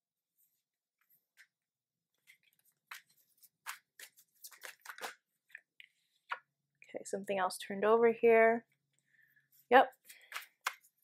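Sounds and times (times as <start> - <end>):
cards being shuffled: 2.2 - 5.7, 10.0 - 11.0.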